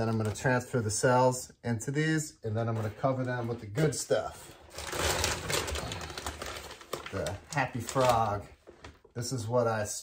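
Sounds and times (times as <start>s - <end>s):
plastic bag crinkling: 4.6s - 9.1s.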